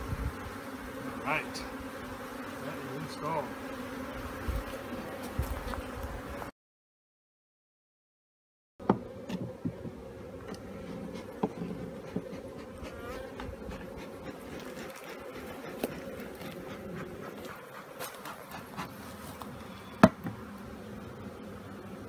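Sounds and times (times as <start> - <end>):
honeybees buzzing: 0.0 - 6.6, 8.8 - 22.0.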